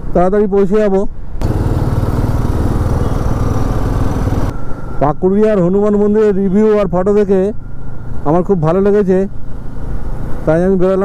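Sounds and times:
road and wind noise: 0:00.0 - 0:11.0
motorcycle engine running: 0:01.4 - 0:04.5.

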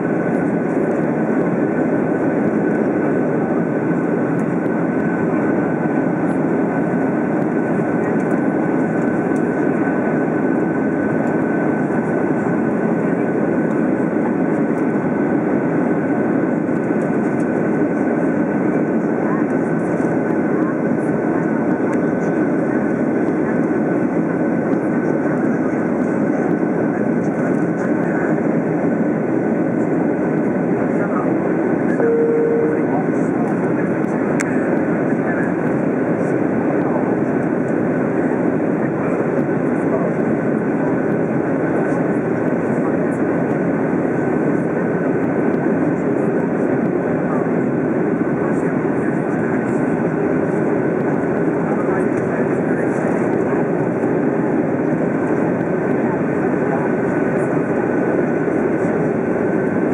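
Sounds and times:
jet engine and airflow: 0:00.0 - 0:59.9
faint high whine: 0:31.9 - 0:33.2
brief cabin tone: 0:32.0 - 0:33.0.

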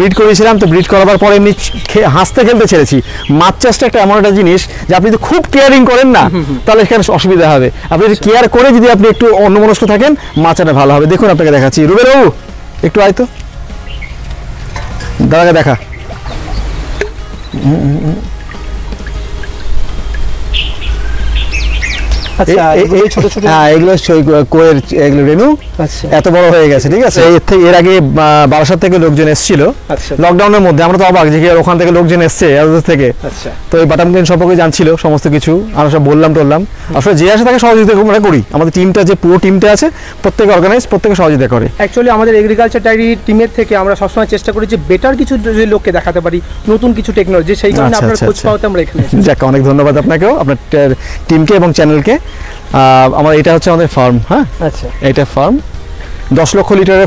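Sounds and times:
man talking: 0:00.0 - 0:13.4, 0:15.1 - 0:15.9, 0:22.4 - 0:57.0
small bird chirping: 0:13.3 - 0:23.8.

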